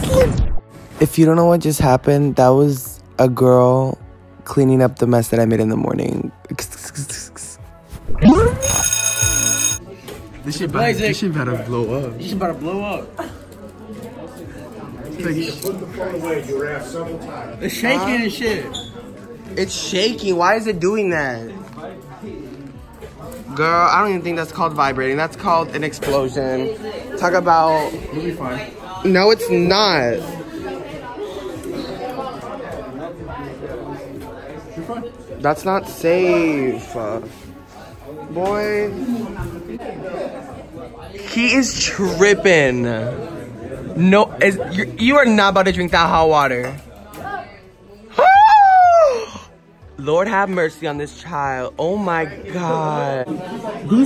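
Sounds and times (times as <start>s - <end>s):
indistinct chatter of voices: 6.6s - 54.0s
buzzy ringtone-like tone: 8.2s - 9.8s.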